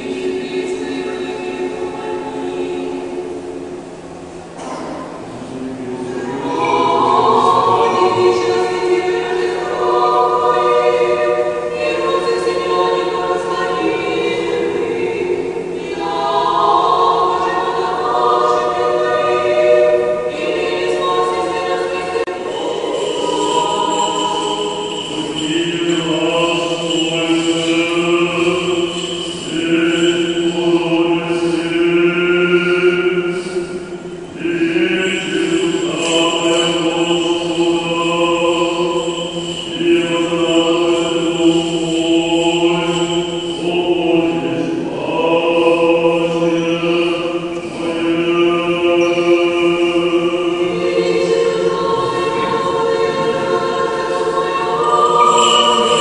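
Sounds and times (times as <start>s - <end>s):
choir singing unaccompanied chant: 0.0s - 3.9s, 4.6s - 56.0s.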